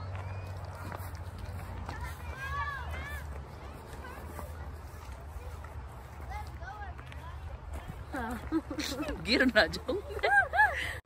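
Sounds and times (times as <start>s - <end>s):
footsteps on gravel: 0.0s - 10.4s
faint distant voices: 0.0s - 11.0s.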